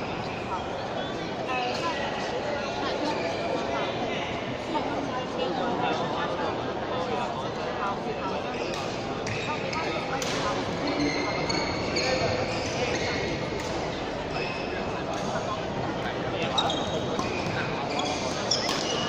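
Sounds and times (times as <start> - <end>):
background chatter: 0.0 - 19.0
shoes squeaking on court floor: 8.5 - 15.4, 16.4 - 19.0
racket hitting shuttlecock: 18.6 - 18.9.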